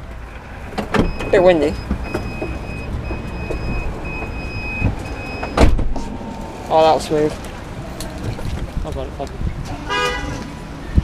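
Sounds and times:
car warning chime beeping: 1.0s - 5.6s
wind rumbling on microphone: 1.0s - 11.0s.

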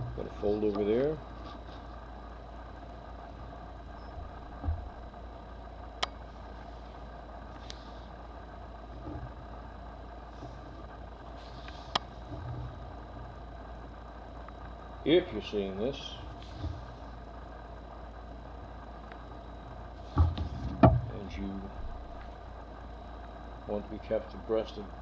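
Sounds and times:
low mechanical hum: 0.0s - 25.0s.

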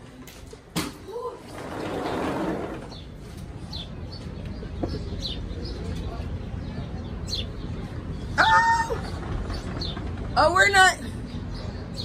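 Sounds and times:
sliding door opening rush: 1.4s - 3.1s, 9.0s - 10.6s.

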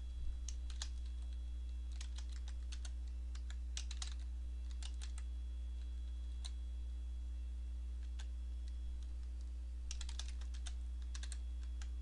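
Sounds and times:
low hum: 0.0s - 12.0s
keyboard typing: 0.4s - 6.6s, 8.0s - 12.0s.

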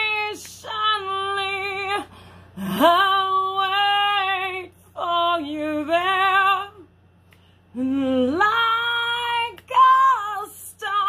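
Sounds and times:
woman singing unaccompanied: 0.0s - 6.9s, 7.7s - 11.0s.

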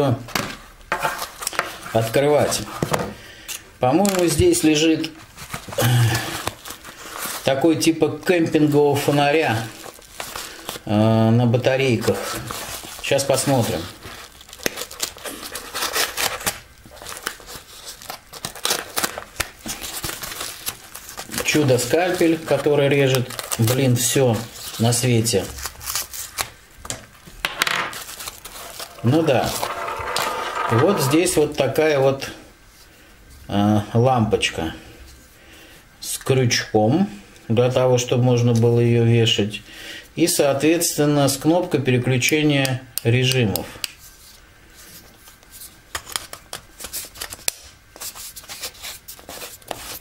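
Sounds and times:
plastic rustling: 9.0s - 10.9s, 12.3s - 26.6s, 27.9s - 31.5s
knife cutting plastic packet: 14.1s - 26.5s, 27.9s - 30.2s.

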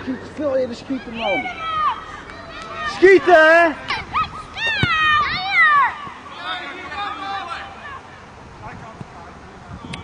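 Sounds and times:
child shouting: 0.9s - 6.3s, 7.2s - 8.1s.

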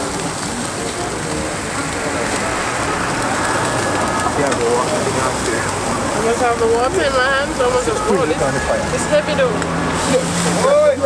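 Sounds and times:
chicken sizzling over flames: 0.0s - 11.0s
fire crackling: 0.0s - 11.0s.

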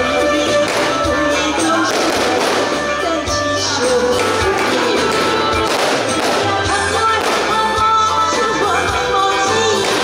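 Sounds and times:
amplified backing music with bass beat: 0.0s - 10.0s
woman singing into microphone: 0.0s - 10.0s.

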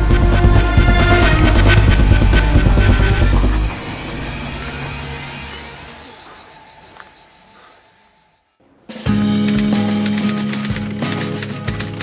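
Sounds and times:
vehicle engine rumble: 0.0s - 7.6s.

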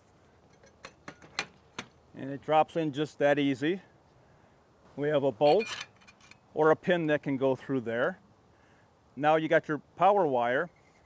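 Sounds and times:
sharp metal clicks and knocks: 0.4s - 2.0s.

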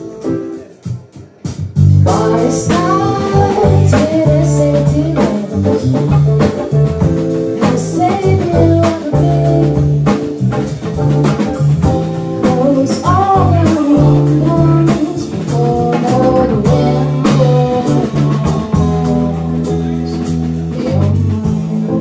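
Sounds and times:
drum kit: 0.0s - 22.0s
keyboard: 0.0s - 22.0s
electric bass guitar: 1.5s - 22.0s
person singing: 2.0s - 22.0s.

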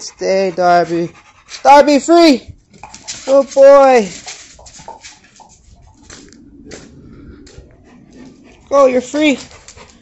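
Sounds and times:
dog paws on concrete: 0.0s - 10.0s.

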